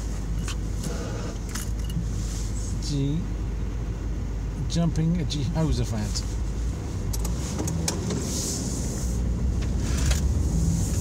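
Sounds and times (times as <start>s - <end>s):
car cabin rumble: 0.0s - 3.2s, 4.8s - 11.0s.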